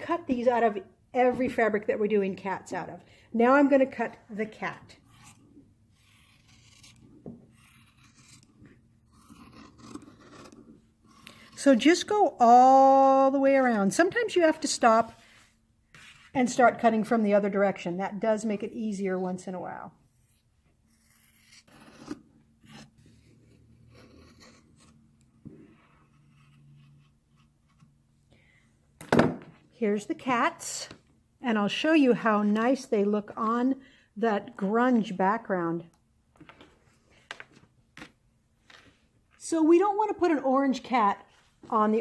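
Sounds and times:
scissors snipping fabric: 5.0 - 12.0.

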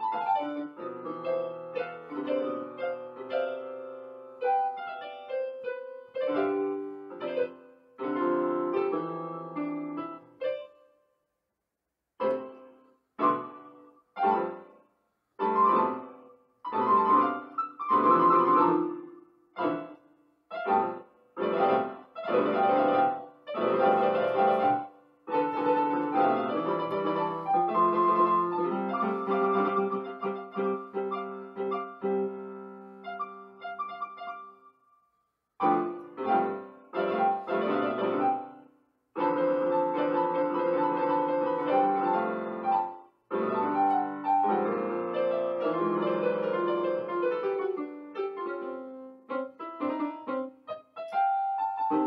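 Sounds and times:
solo piano: 0.0 - 11.0, 12.2 - 34.9, 35.6 - 52.0.

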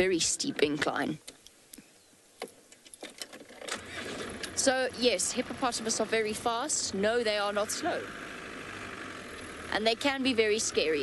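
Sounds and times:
low vehicle engine noise: 2.2 - 11.0.

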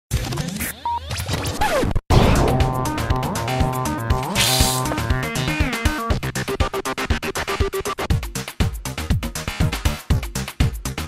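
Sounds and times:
scratchy glitchy noise: 4.3 - 4.9.

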